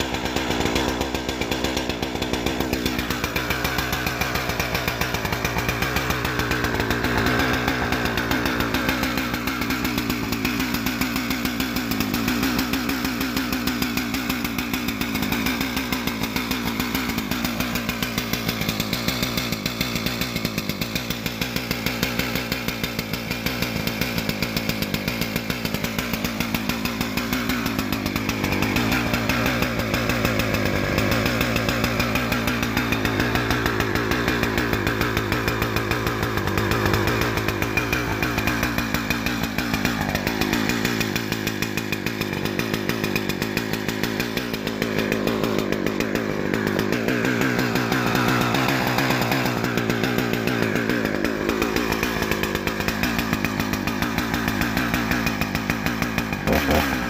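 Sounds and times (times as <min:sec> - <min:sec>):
chainsaw engine idling: 0:00.0 - 0:57.0.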